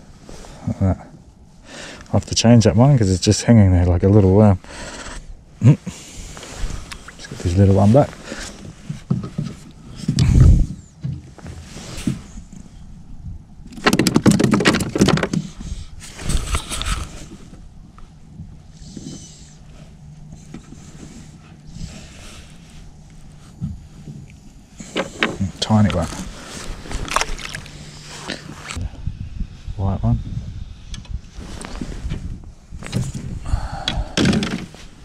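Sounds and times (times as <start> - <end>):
waterproof jacket rustling: 26.2 - 28.8.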